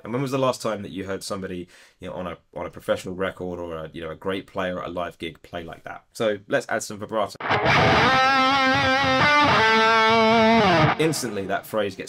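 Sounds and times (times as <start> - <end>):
electric guitar with vibrato: 7.4 - 11.5.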